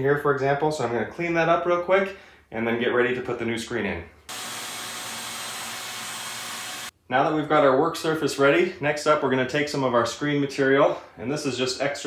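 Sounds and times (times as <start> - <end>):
vacuum cleaner running: 4.3 - 6.9.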